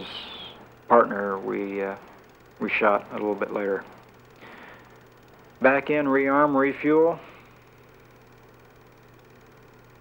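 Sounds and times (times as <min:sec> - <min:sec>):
faint room hum and hiss: 0:00.0 - 0:10.0.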